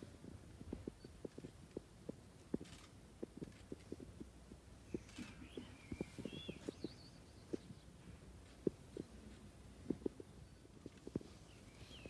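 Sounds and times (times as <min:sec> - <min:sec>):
faint high chirps: 0:04.9 - 0:07.9.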